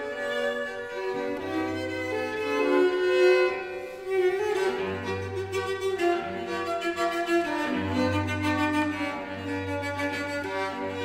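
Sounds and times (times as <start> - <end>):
cello holding low notes: 0.0 - 11.0
violins playing melody: 0.0 - 11.0.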